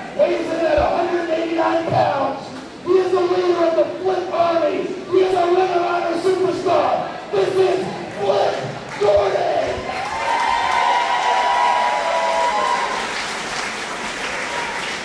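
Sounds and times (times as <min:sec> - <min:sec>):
man speaking over pa: 0:00.2 - 0:09.8
long drawn-out cheer: 0:08.6 - 0:15.0
crowd applauding and cheering: 0:08.9 - 0:15.0.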